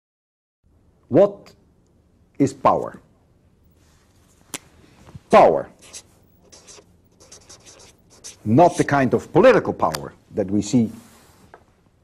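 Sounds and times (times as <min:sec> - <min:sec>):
chalk scratching on blackboard: 0:05.7 - 0:09.0.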